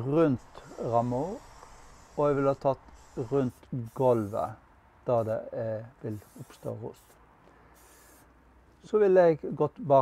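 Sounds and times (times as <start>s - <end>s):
aerosol can spray hiss: 0.4s - 4.6s, 6.1s - 7.2s, 7.8s - 8.3s.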